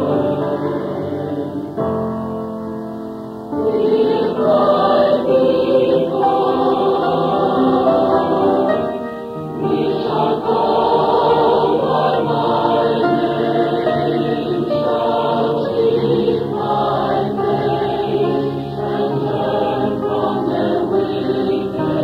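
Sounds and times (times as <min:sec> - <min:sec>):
choir singing sustained chords: 0:00.0 - 0:22.0.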